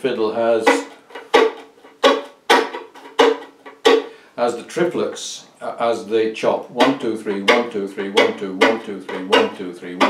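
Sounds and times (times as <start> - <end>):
violin chopping bow strokes: 0.0 - 4.2, 6.7 - 10.0.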